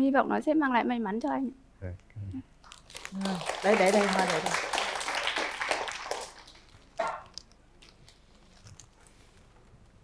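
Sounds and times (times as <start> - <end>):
studio audience applause: 2.9 - 7.1.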